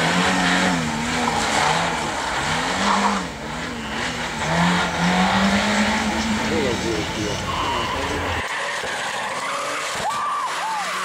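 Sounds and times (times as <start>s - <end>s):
car tyres squealing: 0.0s - 11.0s.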